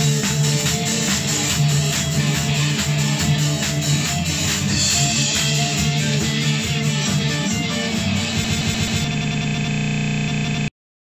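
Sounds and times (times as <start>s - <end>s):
band music with guitars: 0.0s - 9.4s
harsh buzzing audio stutter: 0.0s - 10.7s.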